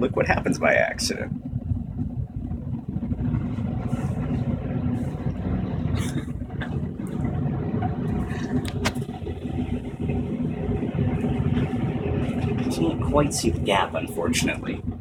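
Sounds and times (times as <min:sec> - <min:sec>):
stir plate low rumbling hum: 0:00.0 - 0:15.0.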